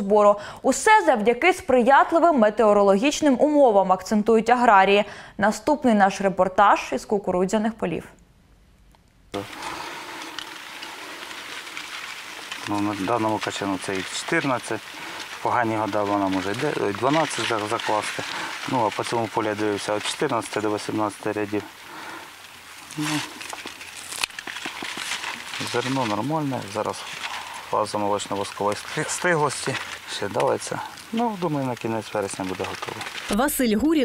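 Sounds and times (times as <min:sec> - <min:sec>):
corn leaves rustling: 0:09.4 - 0:34.0.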